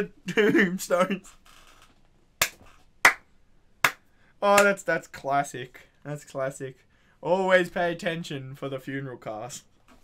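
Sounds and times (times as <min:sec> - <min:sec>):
sharp hand claps: 0:02.4 - 0:04.8.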